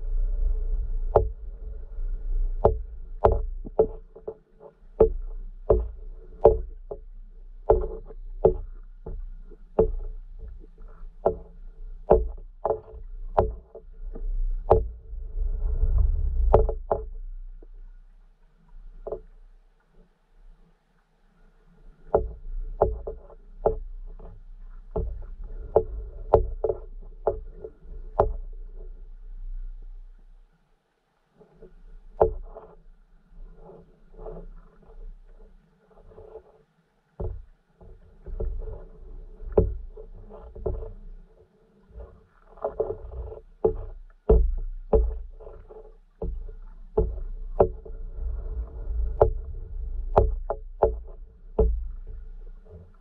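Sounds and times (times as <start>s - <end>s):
underwater clicks and knocks: 0.0s - 20.6s, 21.7s - 30.4s, 31.4s - 53.0s
faint low hum: 0.0s - 53.0s.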